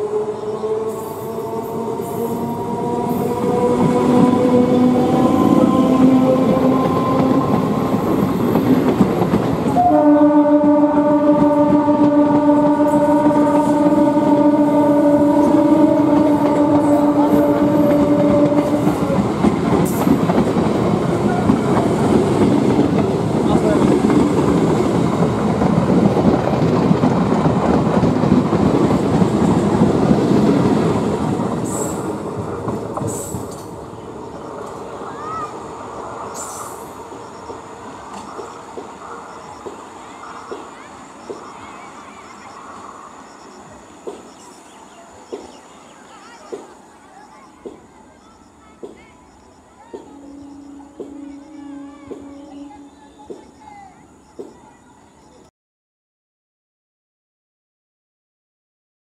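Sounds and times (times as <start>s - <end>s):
train wheels rumbling on track: 0.0s - 54.8s
train horn blasts: 9.7s - 20.0s, 49.9s - 53.4s.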